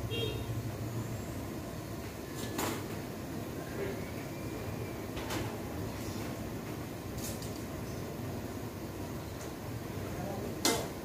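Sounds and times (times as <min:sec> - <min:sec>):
gas burner rumbling: 0:00.0 - 0:11.0.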